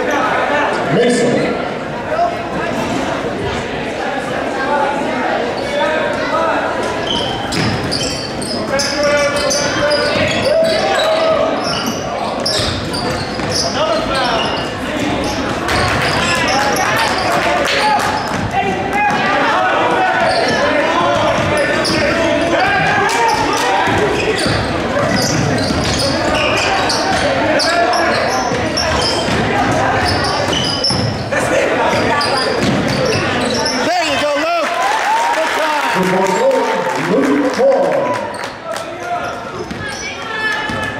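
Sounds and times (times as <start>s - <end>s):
spectators talking: 0.0s - 40.9s.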